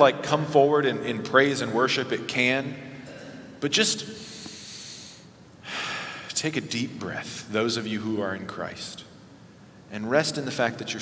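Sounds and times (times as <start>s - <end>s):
man breathing into microphone: 4.2s - 6.3s.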